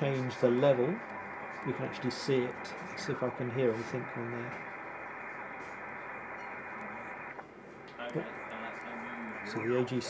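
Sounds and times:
radio band noise hiss: 0:00.0 - 0:10.0.

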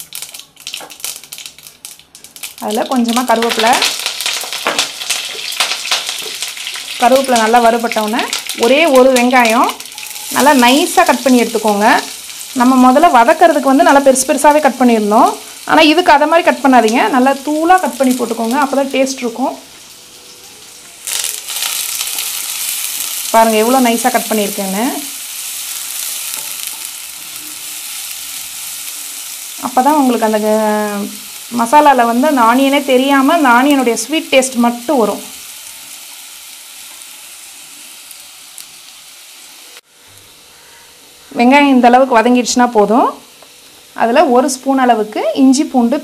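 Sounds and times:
onions sizzling in oil: 0:00.0 - 0:46.0.

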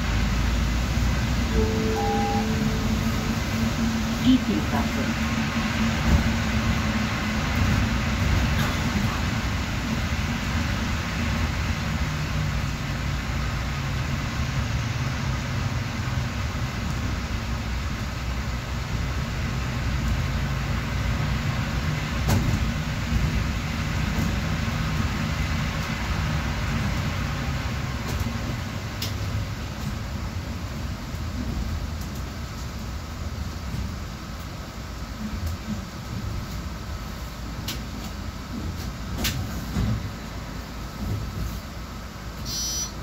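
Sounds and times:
bus engine hum: 0:00.0 - 0:43.0
road and tyre noise: 0:00.0 - 0:43.0.

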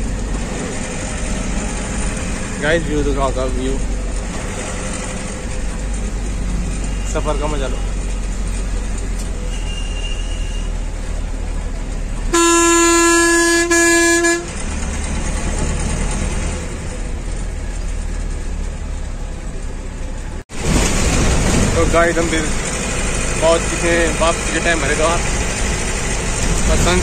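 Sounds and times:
bus engine and road noise: 0:00.0 - 0:27.0
loud bus horn: 0:12.3 - 0:14.7.

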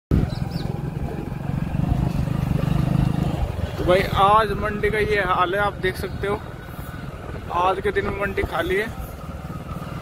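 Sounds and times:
motorcycle engine idling: 0:00.1 - 0:10.0.

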